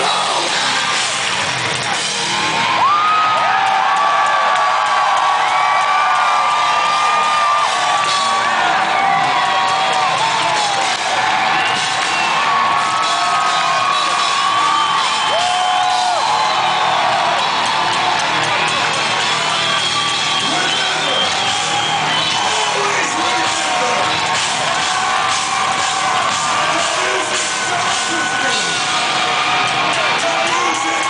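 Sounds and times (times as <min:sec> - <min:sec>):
distorted electric guitar: 0:00.0 - 0:02.9, 0:06.8 - 0:31.0
crowd whooping: 0:00.0 - 0:31.0
drums: 0:00.0 - 0:31.0.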